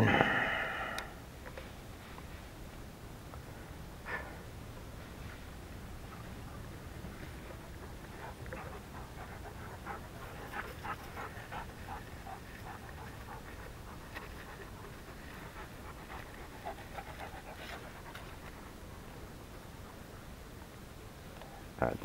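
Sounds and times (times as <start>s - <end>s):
rapid panting: 6.0s - 19.1s.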